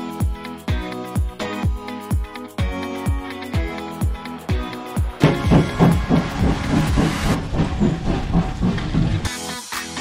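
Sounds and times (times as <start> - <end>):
locomotive exhaust beats: 5.2 - 9.4.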